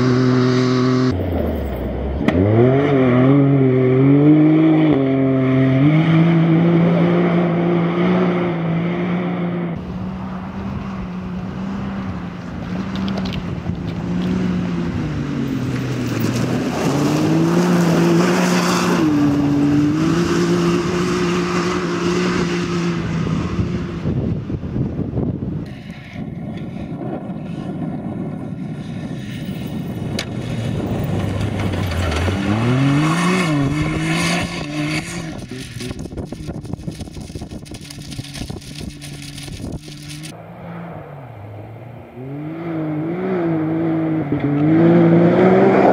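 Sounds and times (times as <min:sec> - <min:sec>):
off-road vehicle engine revving: 0:00.0 - 0:24.3, 0:30.0 - 0:45.9.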